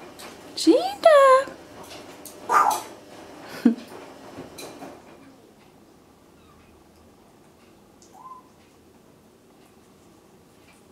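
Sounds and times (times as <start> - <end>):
parrot calls: 2.5 - 2.9, 8.1 - 8.6.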